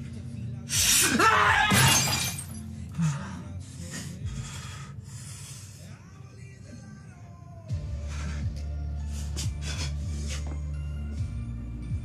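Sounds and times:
glass shattering: 1.6 - 2.7.

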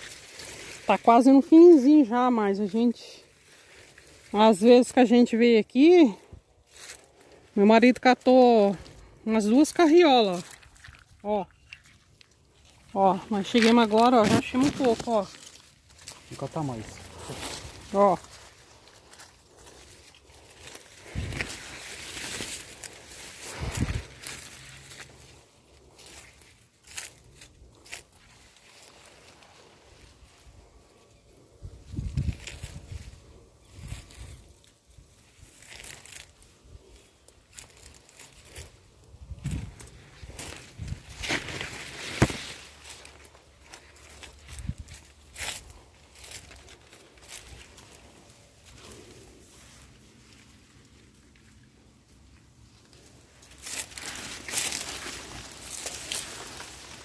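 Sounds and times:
footsteps crunching dry leaves: 0.0 - 5.1, 5.7 - 31.0, 31.7 - 57.0
corn leaves brushing: 0.0 - 31.1, 31.8 - 57.0.

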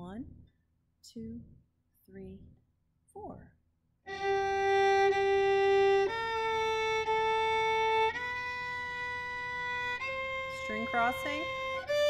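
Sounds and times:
solo violin bowed notes: 4.1 - 12.0.

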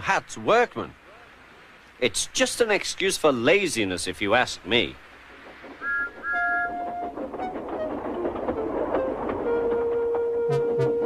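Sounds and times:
rail noise: 0.0 - 11.0
steam engine whistle blasts: 5.8 - 6.9, 10.2 - 11.0
background music: 8.6 - 11.0.

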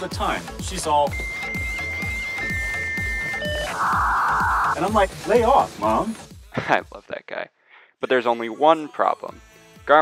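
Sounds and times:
background music with low beat: 0.0 - 7.1
electronic beeping tones: 1.1 - 4.8
harsh static buzz: 3.2 - 4.8.

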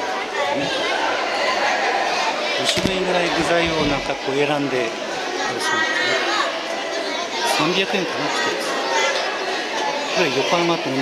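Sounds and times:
children chattering in a hall: 0.0 - 11.0.

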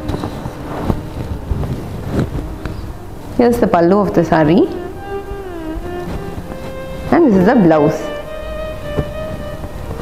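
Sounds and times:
fabric rustling and rubbing: 0.0 - 10.0
low rumbling: 0.0 - 10.0.

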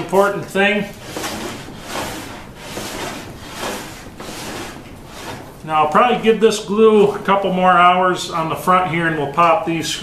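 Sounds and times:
sled sliding on saw table: 0.0 - 6.0.

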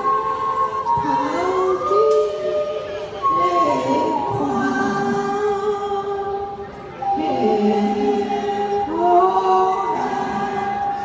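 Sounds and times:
group singing in unison: 0.0 - 11.0.

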